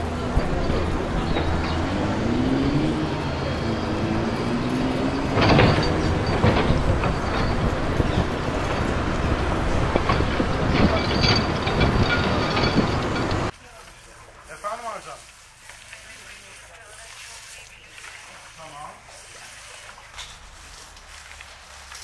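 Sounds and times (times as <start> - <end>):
truck and roller engines: 0.0 - 22.0
shovels scraping asphalt: 13.6 - 22.0.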